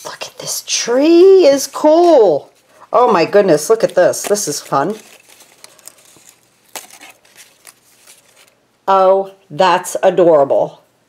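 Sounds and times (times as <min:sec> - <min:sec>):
paper rustling: 0:01.9 - 0:08.6.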